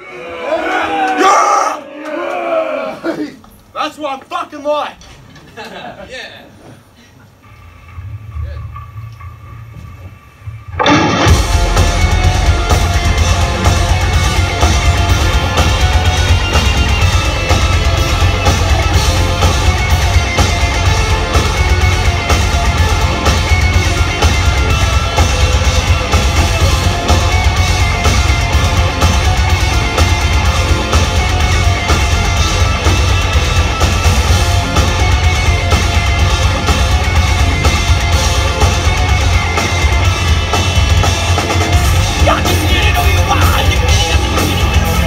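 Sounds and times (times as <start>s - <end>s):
man laughing: 5.3s - 7.4s
heavy metal band playing: 10.4s - 45.0s.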